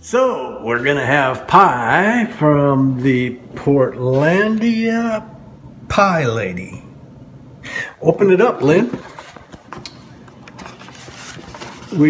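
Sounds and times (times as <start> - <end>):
cardboard lid rustling and scraping: 10.6 - 12.0.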